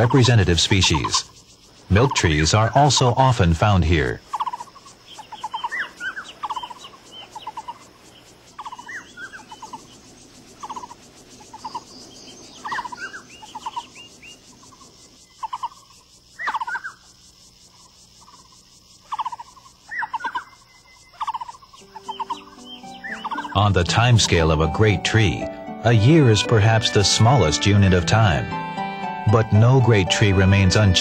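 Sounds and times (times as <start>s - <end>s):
birds chattering and whistling: 0.0s - 31.0s
soft steady hiss: 0.0s - 31.0s.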